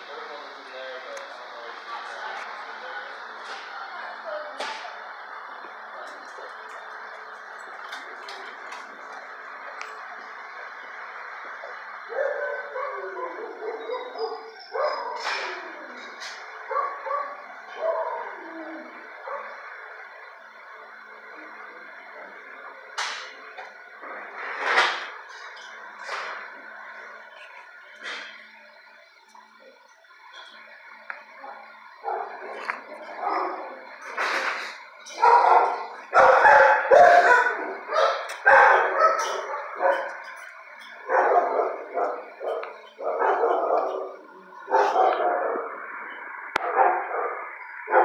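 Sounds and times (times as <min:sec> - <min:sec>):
steady background noise: 0:00.0 - 0:48.0
dogs barking and yelping: 0:12.1 - 0:19.7, 0:35.1 - 0:48.0
dog barking: 0:35.1 - 0:40.2, 0:41.1 - 0:44.0, 0:44.7 - 0:45.6.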